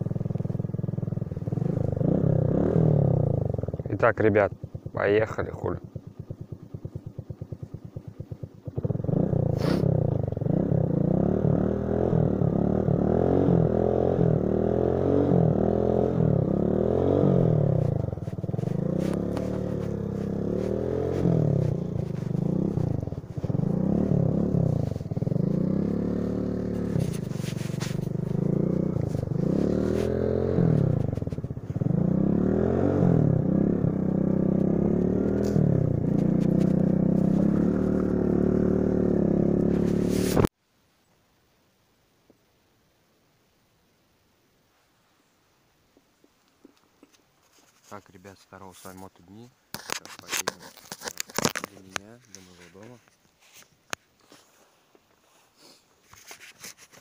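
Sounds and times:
motorcycle engine revving: 0:00.0 - 0:40.5.

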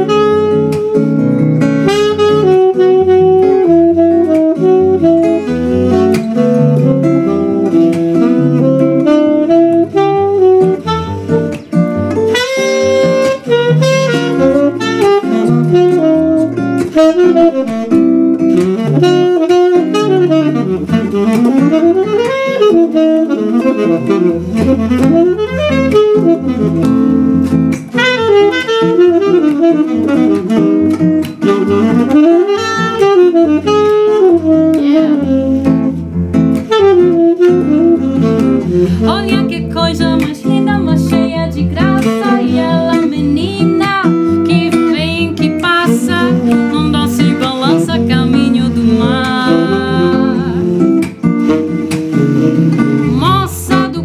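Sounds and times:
acoustic guitar chords and bass: 0:00.0 - 0:22.0, 0:23.5 - 0:28.0, 0:32.8 - 0:54.0
saxophone jazz solo: 0:00.0 - 0:54.0.

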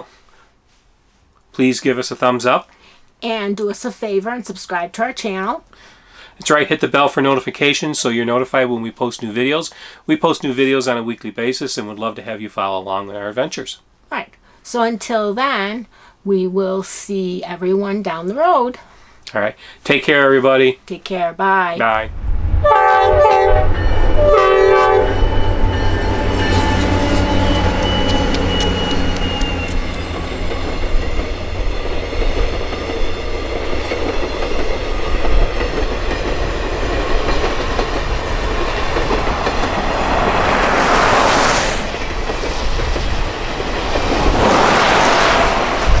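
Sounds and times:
locomotive horn: 0:22.6 - 0:30.5
train cars rolling on rails: 0:22.7 - 0:46.0.

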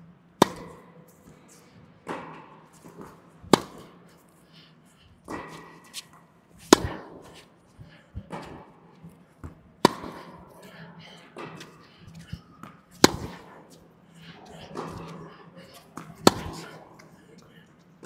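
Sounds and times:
distant tennis ball hits: 0:00.4 - 0:00.8, 0:02.1 - 0:04.0, 0:06.6 - 0:07.3, 0:09.4 - 0:10.4, 0:13.0 - 0:13.5, 0:16.0 - 0:16.7
racket striking tennis ball: 0:00.4 - 0:00.9, 0:02.0 - 0:04.1, 0:05.3 - 0:07.5, 0:09.4 - 0:10.6, 0:11.4 - 0:13.8, 0:14.5 - 0:15.2, 0:15.8 - 0:16.8.

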